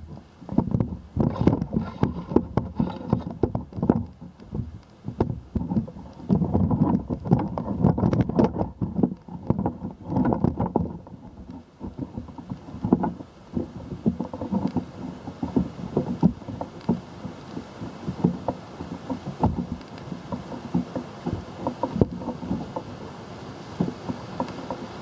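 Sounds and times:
wind buffeting microphone: 0.0 - 25.0
camera handling rubbing and knocking: 0.1 - 22.9.

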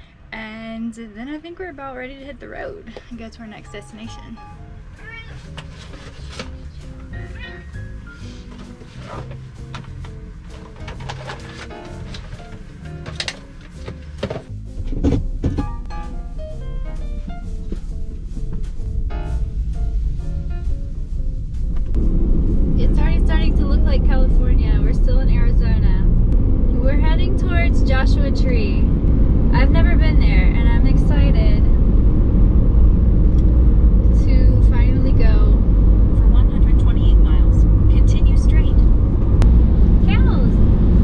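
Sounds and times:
van engine rumble: 0.0 - 41.0
person's voice: 22.8 - 26.0.

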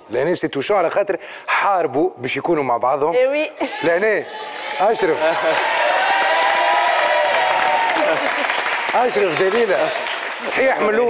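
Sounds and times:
audience cheering: 4.3 - 11.0
studio audience applauding: 4.6 - 11.0.

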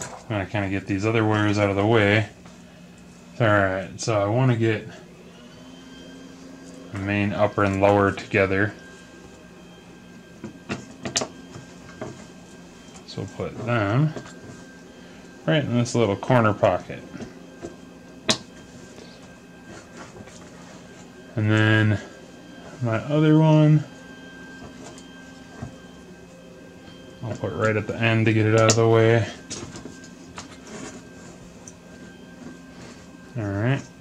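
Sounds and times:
low background hum: 0.0 - 34.0
speech: 0.2 - 2.4, 3.4 - 5.0, 6.9 - 8.8, 13.1 - 14.2, 15.4 - 17.2, 21.4 - 22.1, 22.8 - 23.9, 27.2 - 29.4, 33.4 - 33.9
cables being handled: 5.6 - 34.0.

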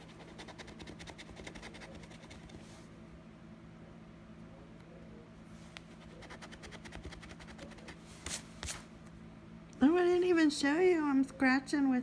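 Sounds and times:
woman's voice: 9.8 - 12.0.

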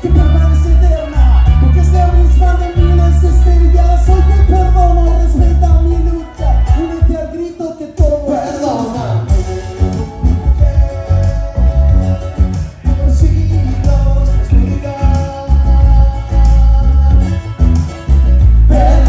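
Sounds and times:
electric bass line: 0.0 - 7.2, 9.0 - 19.0
person singing: 0.0 - 17.6, 18.6 - 19.0.

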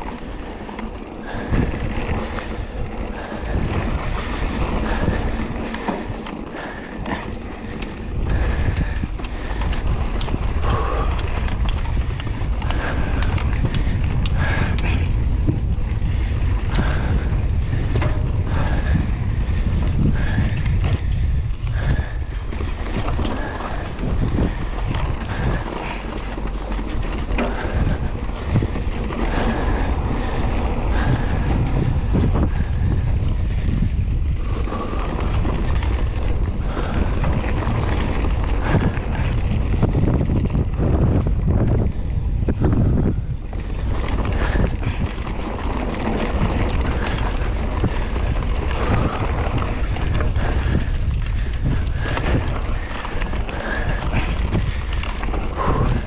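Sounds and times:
bike rattling and knocking: 0.0 - 56.0
tyres on dirt: 0.0 - 56.0
wind rumbling on microphone: 0.0 - 56.0.

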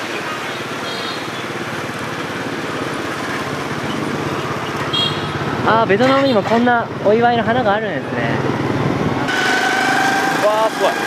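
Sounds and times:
road and wind noise: 0.0 - 11.0
small motorbike engine running: 0.4 - 5.8, 8.1 - 11.0.

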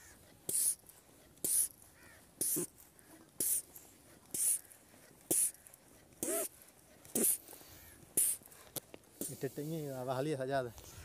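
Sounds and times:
hand pump hissing: 0.5 - 0.8, 1.4 - 1.7, 2.4 - 4.7, 5.3 - 8.6, 9.2 - 10.1.

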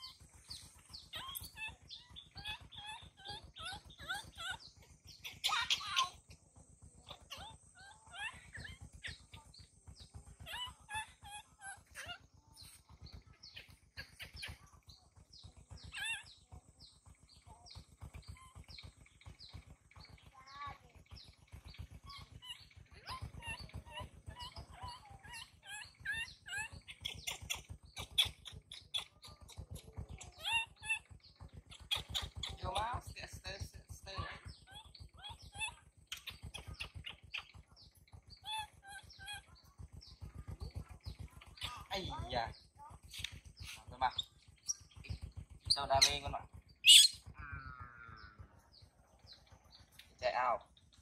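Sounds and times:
baby monkey squeaking and whimpering: 0.0 - 6.2, 7.0 - 12.8, 15.4 - 16.4, 22.0 - 33.1, 34.3 - 37.6, 38.2 - 40.8, 43.1 - 48.8.

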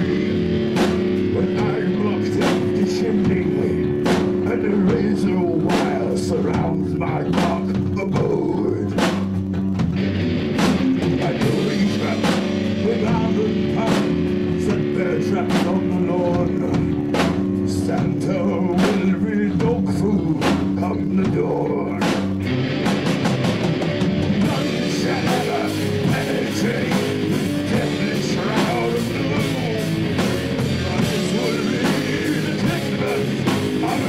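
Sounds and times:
bass guitar: 0.0 - 34.0
drum kit: 0.0 - 34.0
electric guitar: 0.0 - 34.0.

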